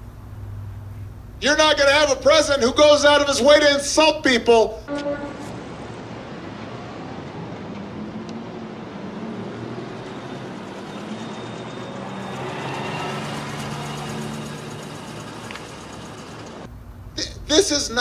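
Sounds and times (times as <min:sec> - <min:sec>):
low hum: 0:04.8 - 0:17.5
traffic noise: 0:04.9 - 0:17.2.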